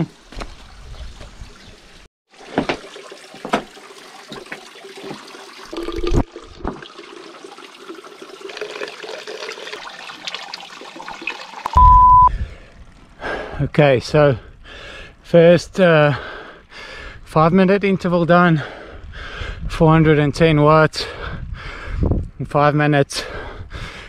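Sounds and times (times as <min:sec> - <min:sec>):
water splashing into bottle: 0:02.5 - 0:06.9
short beep: 0:11.7 - 0:12.3.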